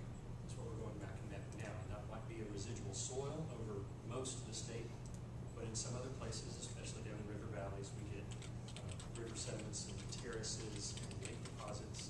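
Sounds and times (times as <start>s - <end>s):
steady low hum: 0.0s - 12.0s
man lecturing: 5.6s - 12.0s
keyboard typing: 8.3s - 12.0s.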